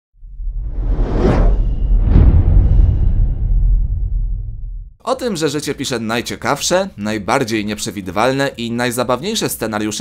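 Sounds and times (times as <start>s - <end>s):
whoosh sound effect: 0.4s - 5.0s.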